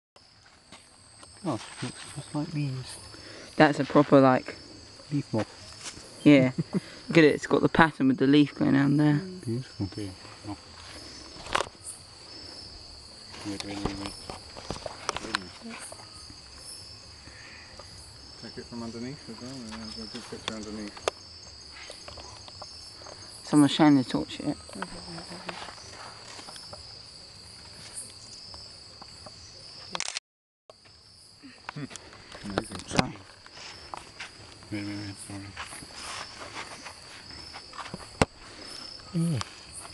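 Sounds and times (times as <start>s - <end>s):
insect chorus trilling: 0.2s - 30.0s, 30.7s - 39.9s.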